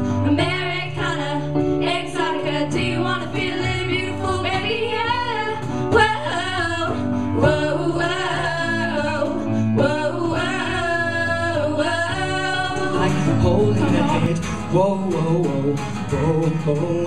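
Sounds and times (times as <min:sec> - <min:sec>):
small band playing low chords: 0:00.0 - 0:17.0
girls singing: 0:00.2 - 0:14.3.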